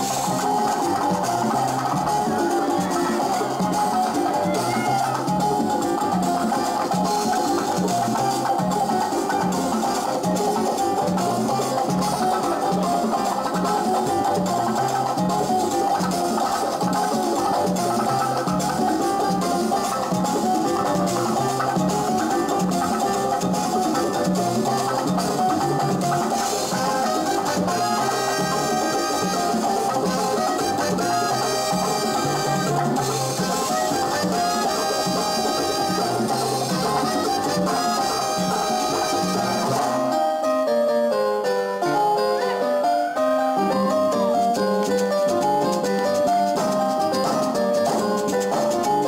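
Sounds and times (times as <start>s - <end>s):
light percussion: 0.0s - 40.1s, 43.6s - 49.0s
plucked strings: 0.0s - 40.3s
repeating bass line: 0.0s - 40.3s
live band playing salsa music: 0.0s - 40.7s, 41.8s - 49.0s.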